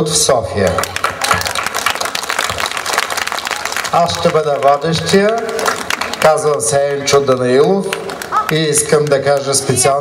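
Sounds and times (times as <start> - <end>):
applause: 0.6 - 10.0.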